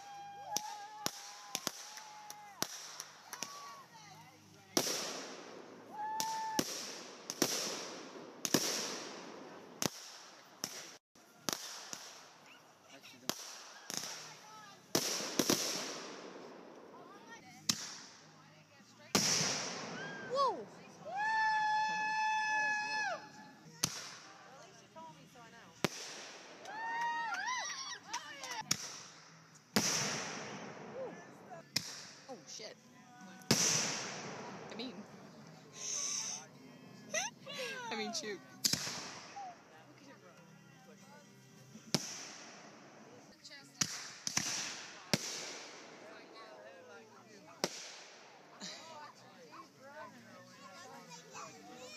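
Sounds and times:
fireworks bangs: 0.0 - 3.8, 4.7 - 12.4, 13.2 - 16.9, 19.1 - 20.8, 25.8 - 27.2, 28.5 - 32.2, 33.5 - 36.2, 38.6 - 39.4, 43.8 - 46.1, 47.6 - 48.4
hiss after bangs: 14.9 - 16.4, 19.1 - 20.2, 28.7 - 30.7, 33.5 - 34.7, 38.6 - 39.4, 41.9 - 42.7, 43.8 - 45.8
firework bang: 19.1 - 20.3, 33.5 - 34.9.

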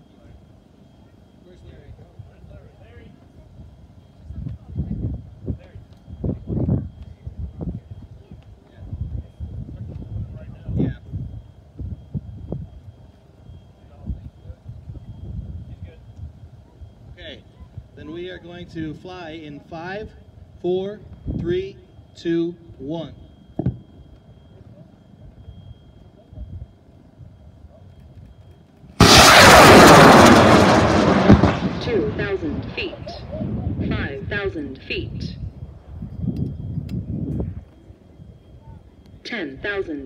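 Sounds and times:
wind rumbling on microphone: 3.4 - 13.1, 13.9 - 18.0, 29.4 - 38.9
rocket motor roaring: 29.0 - 34.2.

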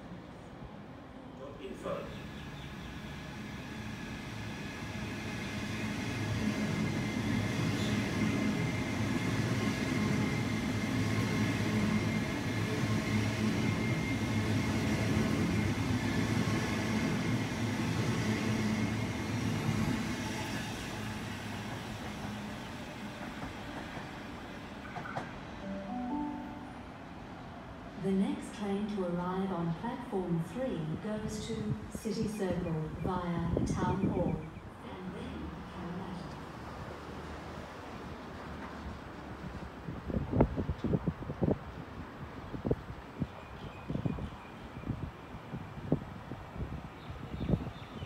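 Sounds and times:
train wheel and rail rumble: 0.0 - 48.0
rising chime: 25.6 - 27.2.

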